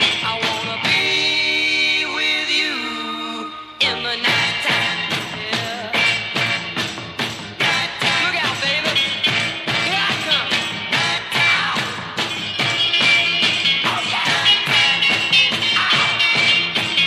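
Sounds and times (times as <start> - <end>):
driving drum beat: 0.0 - 1.5, 4.2 - 17.0
garage rock music: 0.0 - 17.0.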